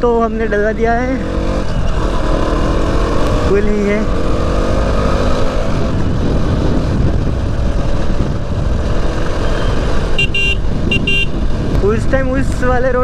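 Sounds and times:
motorcycle engine rumble: 0.0s - 13.0s
wind rushing: 1.2s - 13.0s
motorcycle horn beeps: 9.6s - 11.5s.

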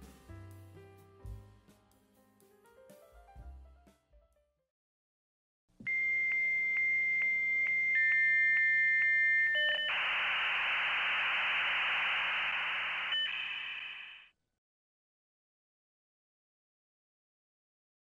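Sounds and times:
lower modem tone: 5.8s - 14.3s
hissing scrambled data noise: 9.9s - 14.3s.

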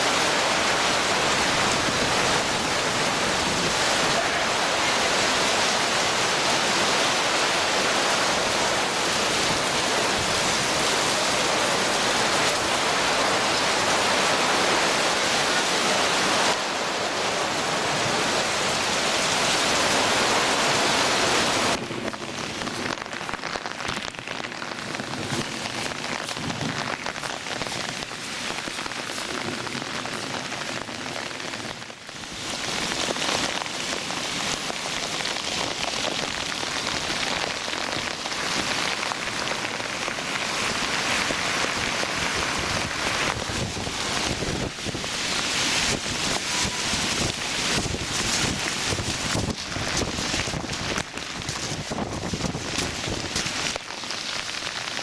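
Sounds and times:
torrential rain pouring: 0.0s - 55.0s.

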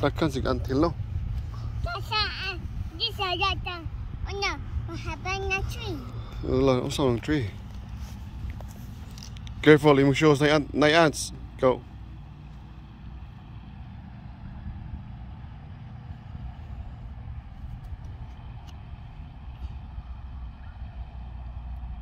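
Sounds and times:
low outdoor rumble: 0.0s - 22.0s.

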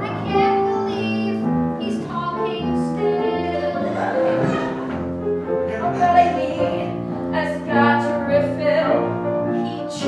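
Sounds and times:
piano accompaniment: 0.0s - 10.0s.

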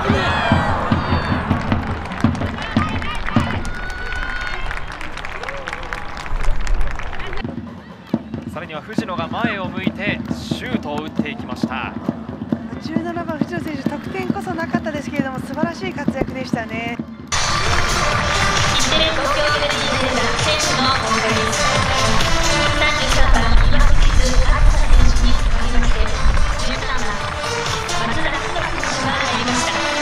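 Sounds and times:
background music: 0.0s - 3.7s, 7.4s - 30.0s
voices shouting: 0.0s - 6.0s.

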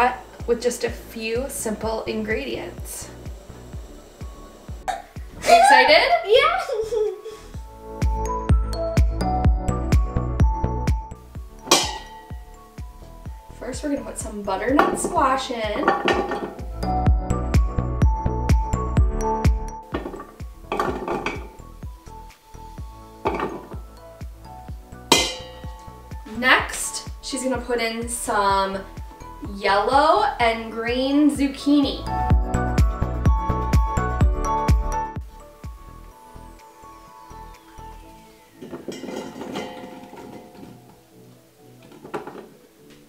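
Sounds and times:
background music: 0.0s - 43.0s
vegetable pieces tumbling into metal pot: 14.7s - 16.8s, 19.9s - 21.6s, 23.2s - 23.8s, 25.1s - 26.4s, 38.6s - 41.1s, 41.8s - 42.6s
squash chunks clattering into pot: 38.6s - 41.0s.

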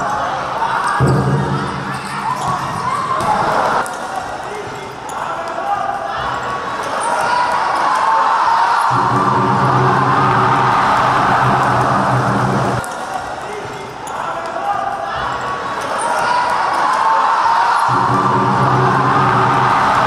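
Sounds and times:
crowd noise echoing: 0.0s - 20.0s
steady low drone: 8.9s - 12.8s, 17.9s - 20.0s.

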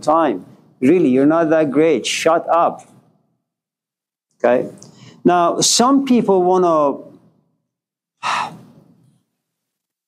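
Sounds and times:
man speaking: 4.4s - 7.2s.

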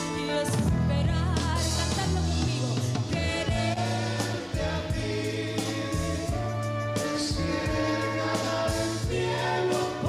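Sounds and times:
woman singing: 0.0s - 3.9s
band playing pop ballad: 0.0s - 10.0s
choir-like backing voices: 3.3s - 10.0s.

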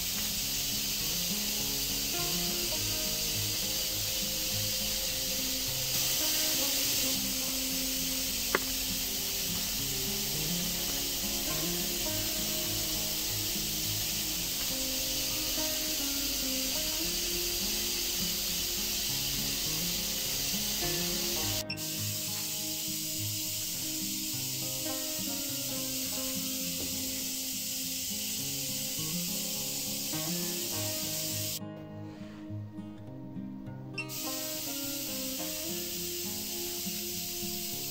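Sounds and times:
high-voltage corona discharge hiss: 0.0s - 31.6s, 34.0s - 37.9s
background music: 0.0s - 37.9s.

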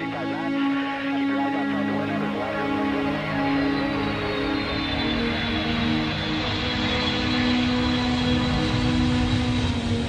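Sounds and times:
airplane engine running: 0.0s - 10.0s
music: 0.0s - 10.0s.

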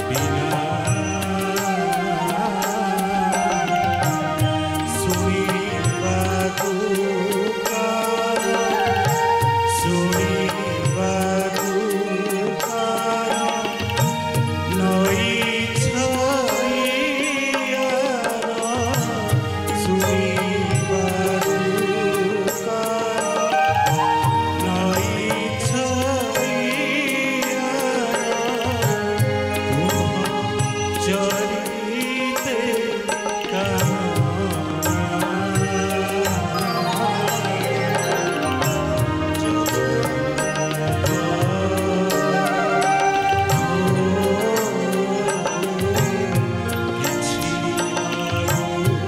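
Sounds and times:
instrumental accompaniment: 0.0s - 49.0s
man singing into microphone: 0.0s - 49.0s
steady percussion beat: 33.0s - 49.0s.

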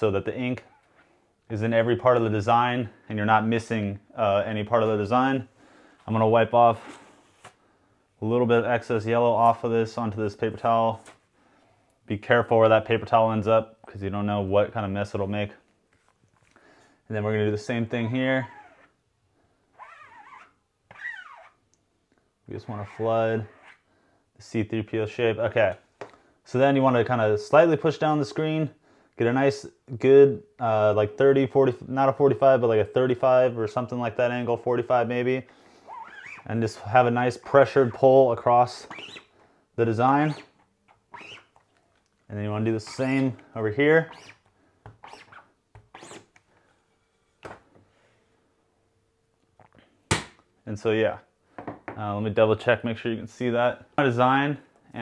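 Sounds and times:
squeegee scraping across mesh: 40.3s - 41.6s, 44.0s - 44.4s, 45.0s - 46.3s.

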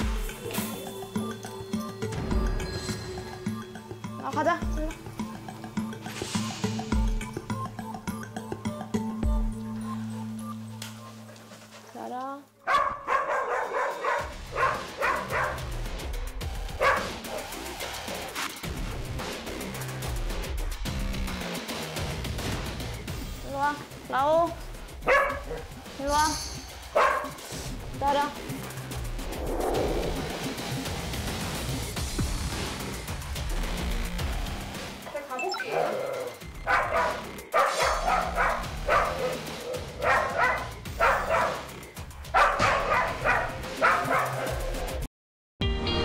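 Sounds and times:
background music: 0.0s - 46.0s
dog barking: 12.6s - 15.8s, 16.7s - 17.5s, 25.0s - 25.7s, 26.9s - 27.4s, 35.7s - 44.7s
electronic music: 28.0s - 41.0s.

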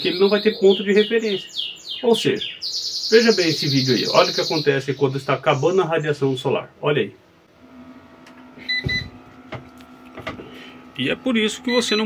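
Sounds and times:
steady low hum: 0.0s - 12.0s
short high beeps: 11.7s - 12.0s.

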